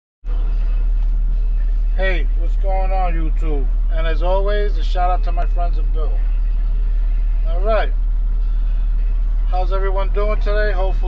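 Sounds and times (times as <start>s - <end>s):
truck engine idling: 0.3s - 11.0s.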